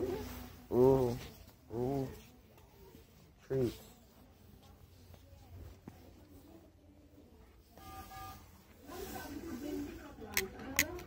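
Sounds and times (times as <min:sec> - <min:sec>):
faint electronic beep: 0:07.6 - 0:08.8.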